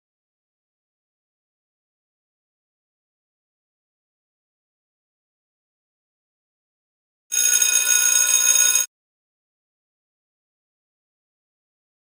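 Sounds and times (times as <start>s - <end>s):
workout timer ringing signal: 7.3s - 8.9s.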